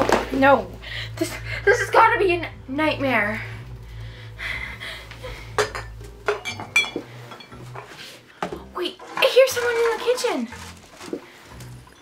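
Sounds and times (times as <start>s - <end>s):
low steady hum: 0.0s - 8.8s
metal kitchenware clinks: 5.6s - 7.9s.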